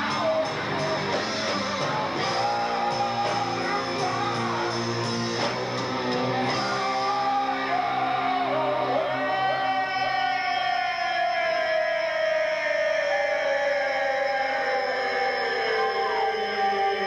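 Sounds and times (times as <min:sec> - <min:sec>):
electric guitar bending notes: 0:00.0 - 0:09.6
slow rock band instrumental: 0:00.0 - 0:10.3.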